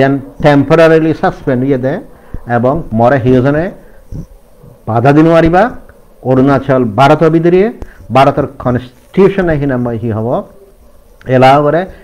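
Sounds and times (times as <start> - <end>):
man talking: 0.0 - 10.6, 11.2 - 12.0.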